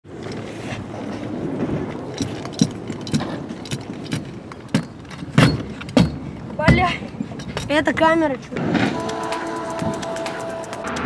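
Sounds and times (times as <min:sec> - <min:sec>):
scooter wheels rolling: 0:00.0 - 0:11.0
scooter clacking on ground: 0:00.1 - 0:10.8.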